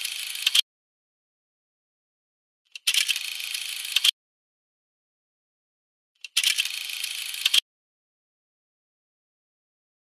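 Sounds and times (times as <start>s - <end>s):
mechanical film-winding rattle: 0.0s - 0.6s, 2.7s - 4.1s, 6.2s - 7.6s.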